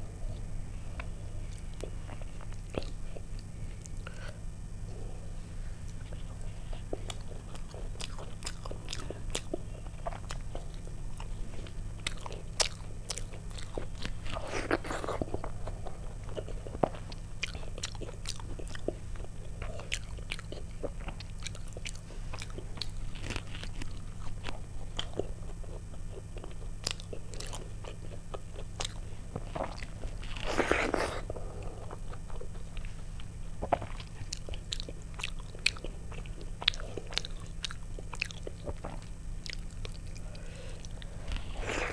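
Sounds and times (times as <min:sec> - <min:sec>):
low hum: 0:00.0 - 0:41.9
chewing and wet mouth sounds: 0:00.3 - 0:05.1, 0:05.8 - 0:41.9.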